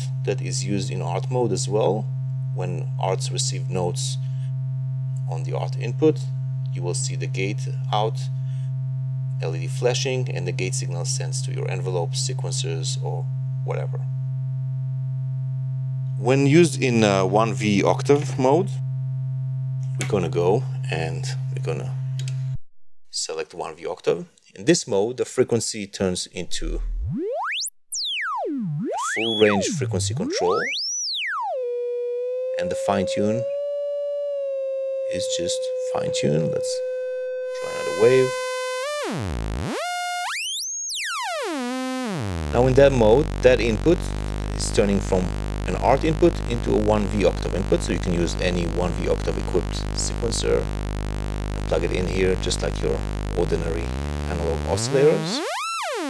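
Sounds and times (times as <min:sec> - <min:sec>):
oscillator steady low tone: 0:00.0 - 0:22.6, 0:26.4 - 0:56.0.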